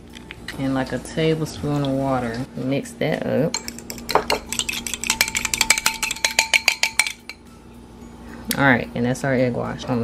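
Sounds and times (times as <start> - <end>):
fork clinking against bowl: 3.5 - 7.5.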